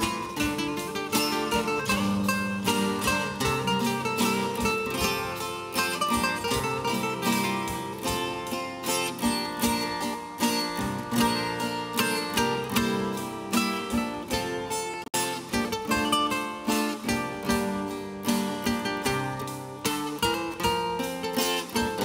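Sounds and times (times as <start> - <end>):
church music with acoustic guitar: 0.0 - 22.0.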